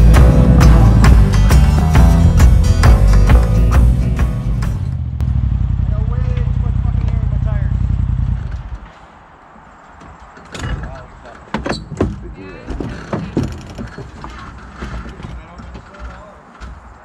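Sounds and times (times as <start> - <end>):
utility vehicle engine running: 0.0 - 8.9.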